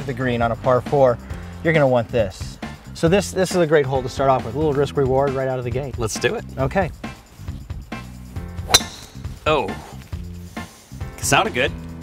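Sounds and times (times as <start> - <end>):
golf club striking ball: 8.6 - 9.4.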